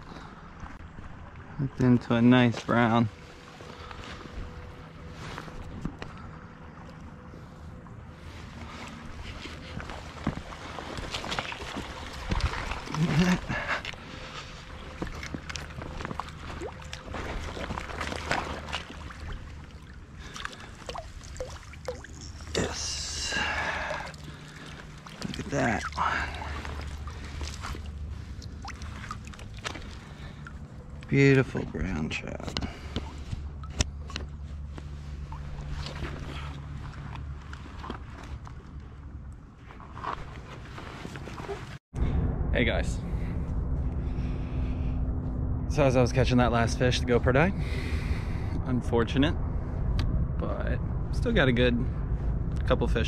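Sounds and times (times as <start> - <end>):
fish splashing in water: 9.8 - 22.6, 23.3 - 30.7.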